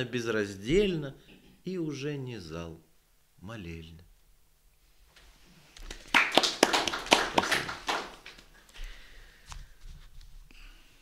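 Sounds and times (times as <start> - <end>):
audience applauding: 5.8 - 8.4.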